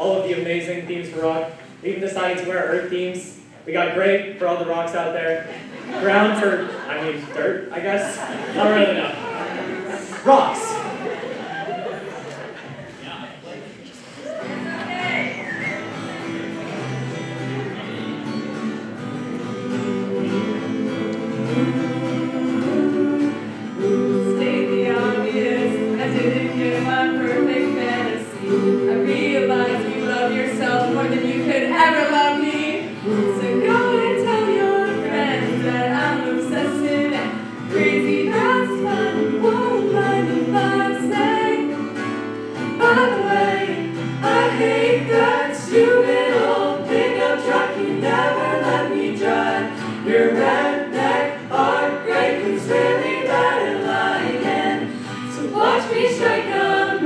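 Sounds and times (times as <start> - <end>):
acoustic guitar: 0.0 - 57.0
children singing in harmony: 19.4 - 57.0.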